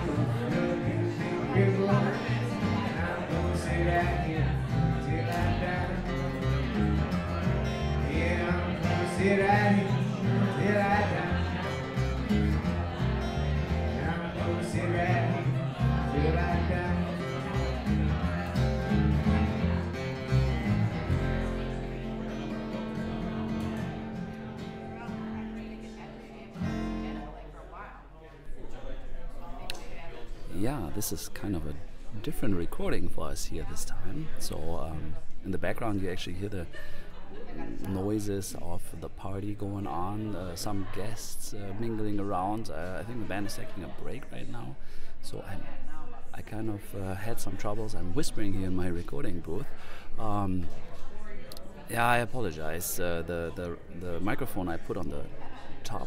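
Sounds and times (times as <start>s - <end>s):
country band playing: 0.0s - 27.3s
acoustic guitar: 0.0s - 27.9s, 30.5s - 56.0s
person singing: 7.7s - 11.8s.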